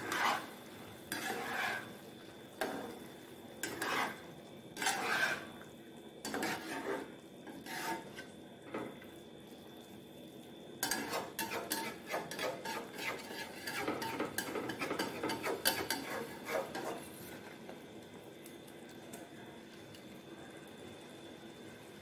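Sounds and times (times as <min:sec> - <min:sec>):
spatula scraping and sloshing gravy: 0:00.0 - 0:02.0, 0:03.6 - 0:08.9, 0:10.8 - 0:17.5
faint gravy sizzle: 0:00.0 - 0:22.0.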